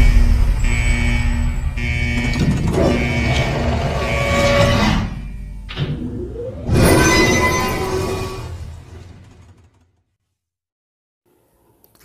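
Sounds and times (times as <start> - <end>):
sharp musical hits: 0.0 - 5.2.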